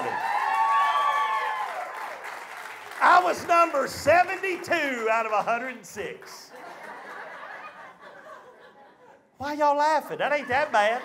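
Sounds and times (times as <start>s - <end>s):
audience applauding and cheering: 0.0s - 7.1s.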